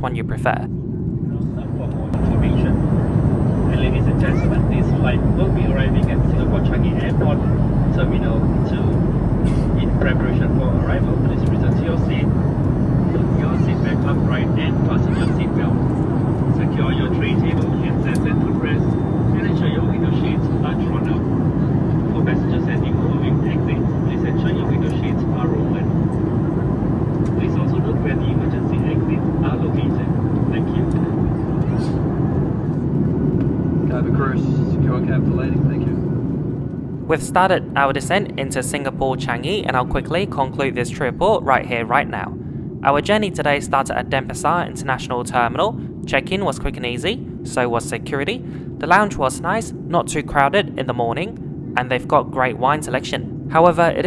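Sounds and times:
announcement over cabin speakers: 0.0s - 32.6s, 37.0s - 54.0s
airplane cabin rumble: 0.0s - 54.0s.

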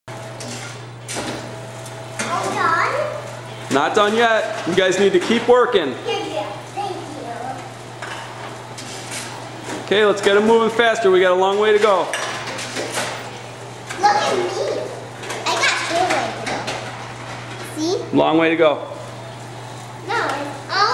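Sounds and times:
vending machine humming: 0.1s - 20.9s.

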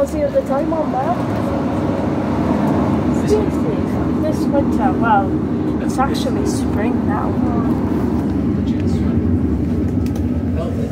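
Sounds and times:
diesel engine droning: 0.0s - 10.9s
train wheels rumbling on rails: 0.0s - 10.9s.

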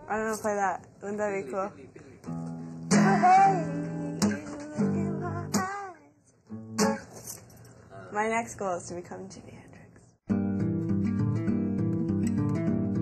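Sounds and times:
acoustic guitar strumming chords: 2.3s - 7.4s, 10.3s - 13.0s.

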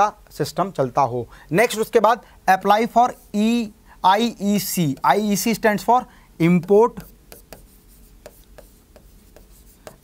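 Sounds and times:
stylus tapping and scratching glass: 6.6s - 10.0s.

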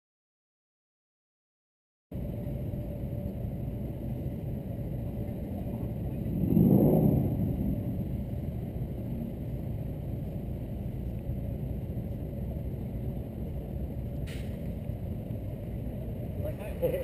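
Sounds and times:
low urban traffic rumble: 2.1s - 17.0s.

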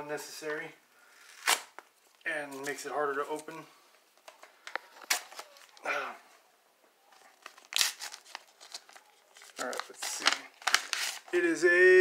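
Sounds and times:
paper envelope tearing: 7.4s - 11.4s.

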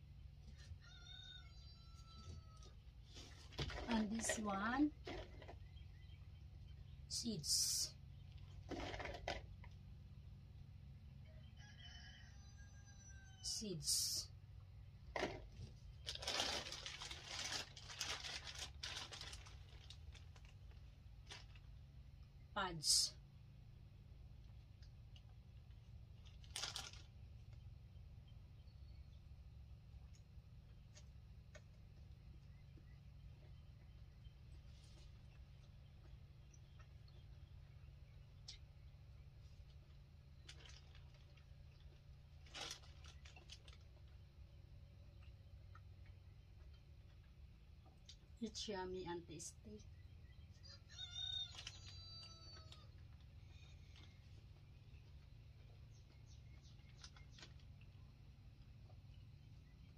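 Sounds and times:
low steady hum: 0.0s - 0.8s, 12.8s - 50.7s
plastic bag crinkling: 15.9s - 21.7s, 26.2s - 27.5s, 40.4s - 44.2s
soft rustle: 34.4s - 35.8s.

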